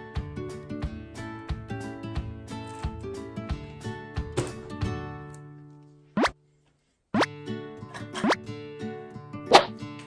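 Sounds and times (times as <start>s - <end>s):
cheerful background music: 0.0s - 6.4s, 7.2s - 10.0s
cartoon pop sound effects: 9.5s - 9.8s.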